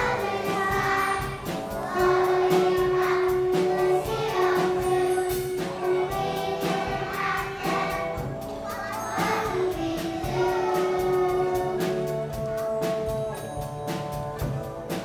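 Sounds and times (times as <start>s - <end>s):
children singing in chorus: 0.0s - 13.0s
music: 0.0s - 15.0s.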